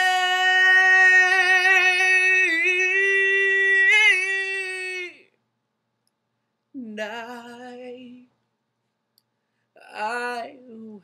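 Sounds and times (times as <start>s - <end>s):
man singing unaccompanied: 0.0s - 5.3s, 6.8s - 8.3s.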